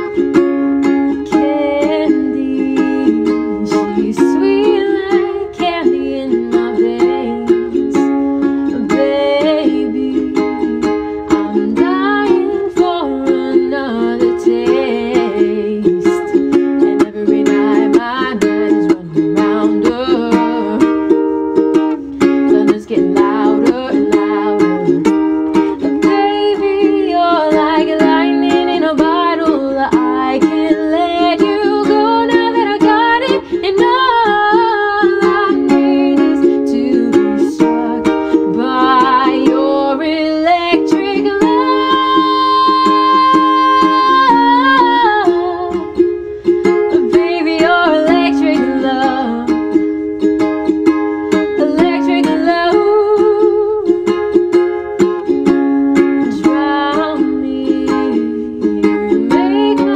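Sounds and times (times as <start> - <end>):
ukulele strumming: 0.0 - 59.9
woman singing: 0.0 - 59.9.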